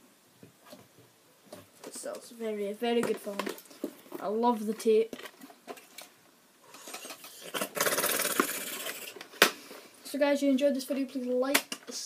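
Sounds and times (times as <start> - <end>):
sharp plastic clicks: 11.5 - 12.0.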